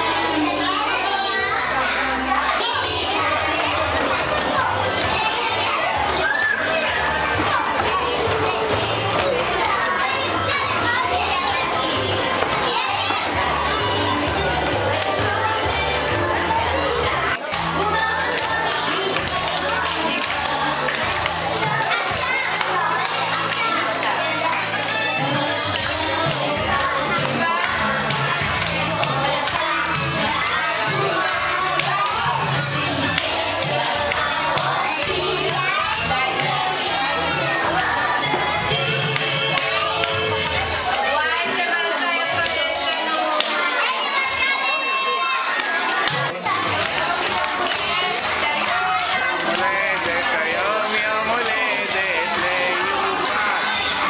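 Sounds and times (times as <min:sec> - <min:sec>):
music playing: 0:00.0 - 0:42.9, 0:44.2 - 0:54.0
children chattering and calling out: 0:00.0 - 0:54.0.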